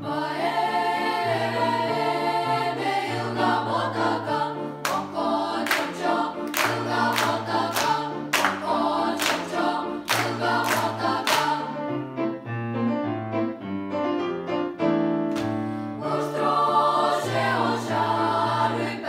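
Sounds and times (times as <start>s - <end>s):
youth choir singing: 0.0s - 11.9s, 16.0s - 19.0s
sharp hand claps: 5.7s - 8.6s, 9.2s - 11.5s, 15.3s - 15.6s.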